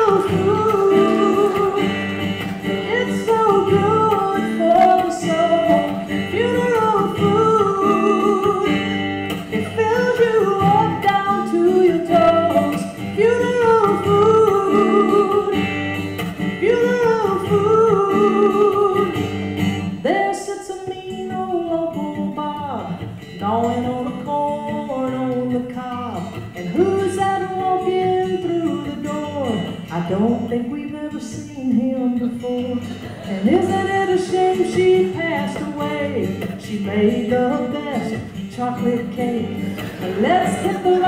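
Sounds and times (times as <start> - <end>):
acoustic guitar strumming: 0.0 - 41.0
woman singing: 0.0 - 41.0.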